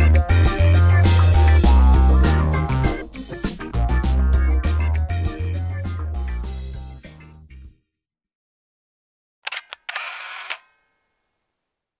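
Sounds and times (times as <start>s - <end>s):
camera shutter clicks: 9.5s - 10.8s
camera shutter rasp: 9.5s - 10.8s.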